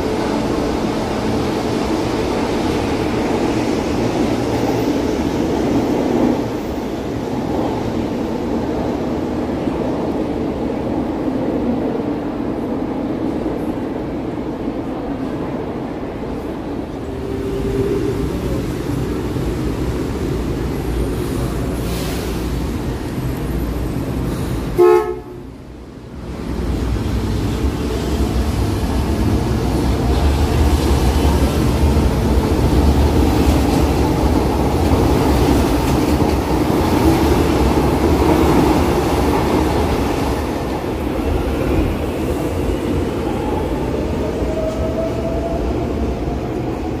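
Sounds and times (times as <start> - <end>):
train rumbling past: 0.0 - 47.0
train horn toot: 24.8 - 25.4.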